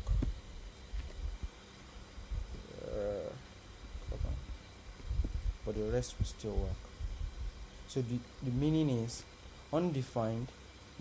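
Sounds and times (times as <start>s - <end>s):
microphone handling rumbles: 0.0s - 1.5s, 3.9s - 7.6s
person humming: 2.6s - 3.4s.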